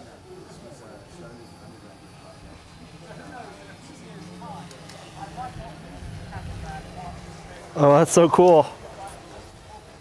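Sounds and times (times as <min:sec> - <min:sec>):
drone propeller hum: 0:00.0 - 0:10.0
faint distant voices talking: 0:00.0 - 0:10.0.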